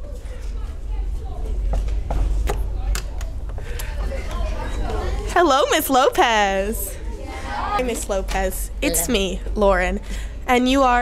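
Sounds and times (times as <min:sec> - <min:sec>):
faint voices: 0:00.0 - 0:10.5.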